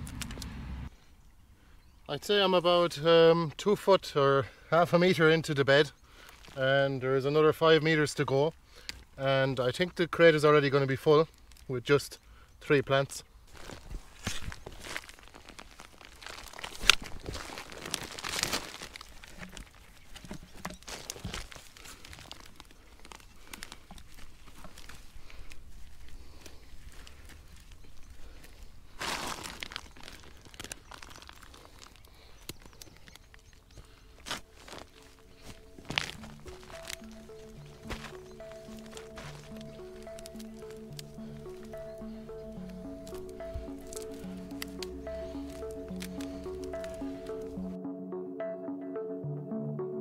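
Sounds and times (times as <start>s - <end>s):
background music: 34.4s - 50.0s.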